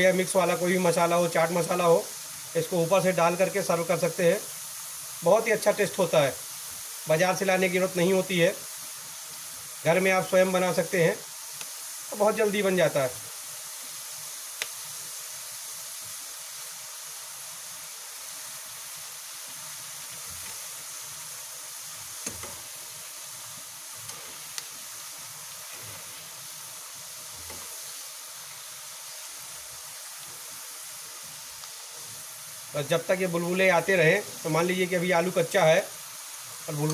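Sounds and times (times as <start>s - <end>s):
oil sizzling and bubbling: 0.0s - 36.9s.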